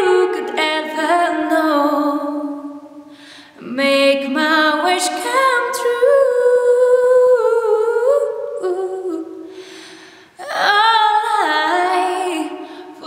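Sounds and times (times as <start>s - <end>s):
woman singing unaccompanied: 0.0s - 2.9s, 3.6s - 9.4s, 10.4s - 13.0s.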